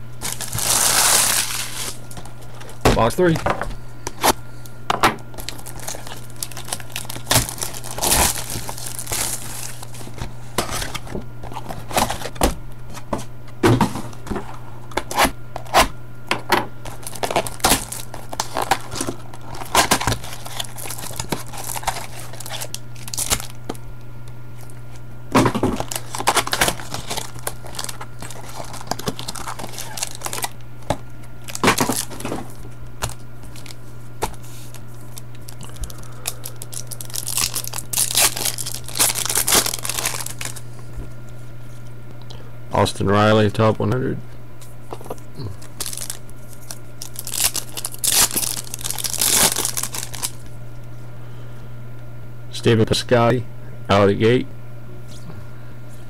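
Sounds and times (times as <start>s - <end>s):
foil packs crinkling: 0.0s - 3.4s, 5.3s - 15.9s, 16.7s - 23.8s, 24.6s - 40.8s, 44.9s - 50.5s
low hum: 0.0s - 52.6s
cardboard tearing: 0.2s - 3.1s, 5.4s - 12.4s, 16.8s - 23.6s, 25.4s - 34.8s, 35.5s - 40.6s, 45.6s - 50.4s.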